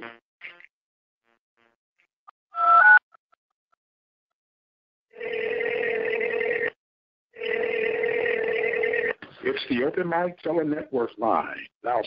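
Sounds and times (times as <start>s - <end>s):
telephone ringing: 5.1s - 6.8s, 7.4s - 9.1s.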